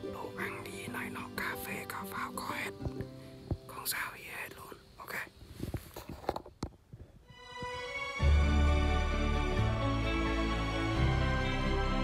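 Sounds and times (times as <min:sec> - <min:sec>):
soft background music: 0:00.0 - 0:04.8, 0:07.3 - 0:12.0
man whispering: 0:00.2 - 0:03.0, 0:03.7 - 0:05.4.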